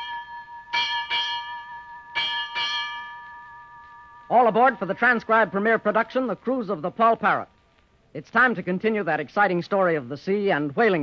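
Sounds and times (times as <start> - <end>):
ship's bell ringing: 0.0 - 6.0.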